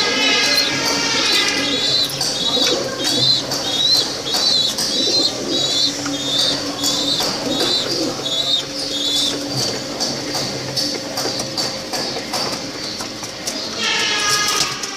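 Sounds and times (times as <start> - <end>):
pigeons cooing: 0.0 - 14.9.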